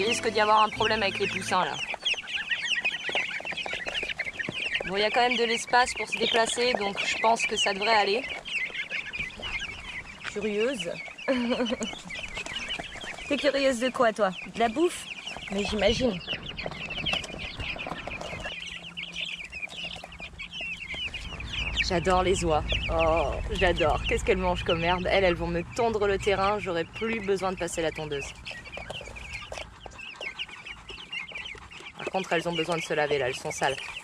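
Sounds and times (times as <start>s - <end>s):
chicks peeping: 0.0s - 34.0s.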